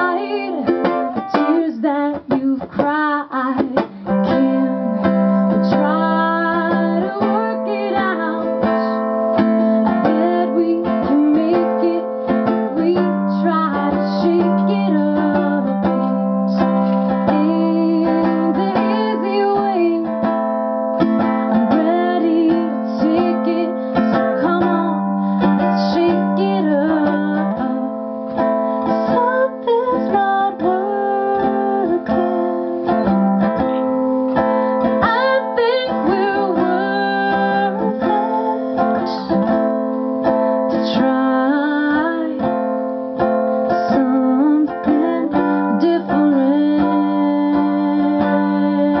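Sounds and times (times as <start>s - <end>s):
ukulele strumming: 0.0s - 49.0s.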